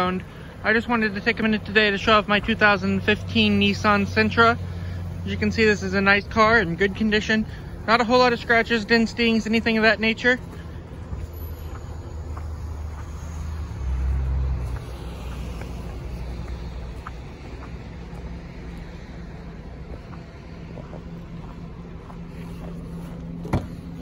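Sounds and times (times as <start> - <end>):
footsteps on packed snow: 0.0 - 24.0
low rumble and hum: 1.2 - 24.0.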